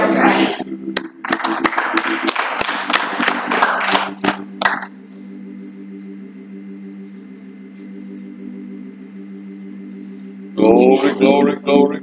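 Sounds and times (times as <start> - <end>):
keyboard low chord: 0.0 - 12.0
congregation clapping: 0.9 - 5.0.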